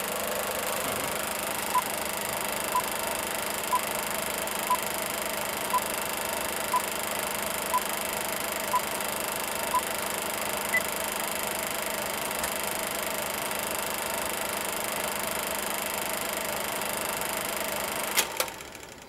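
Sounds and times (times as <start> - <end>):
movie projector whirring: 0.0 - 19.0.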